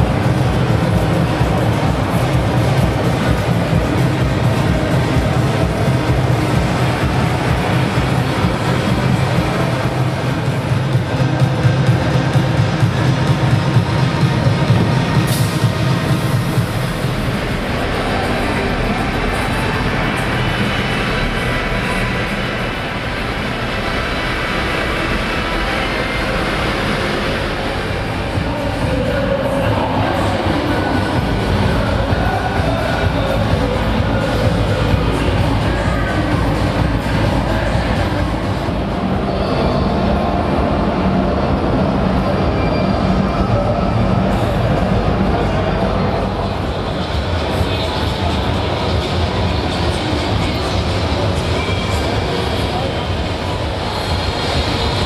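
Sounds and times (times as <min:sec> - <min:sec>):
exhibition hall din: 0:00.0 - 0:55.0
heavy low rumble: 0:00.0 - 0:55.0
music playing: 0:00.0 - 0:55.0.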